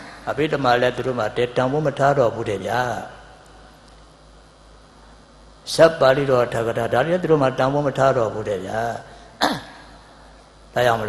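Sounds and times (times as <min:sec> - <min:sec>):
man speaking into a microphone: 0:00.0 - 0:03.3, 0:05.7 - 0:09.2, 0:10.7 - 0:11.0
throat clearing: 0:09.4 - 0:10.0.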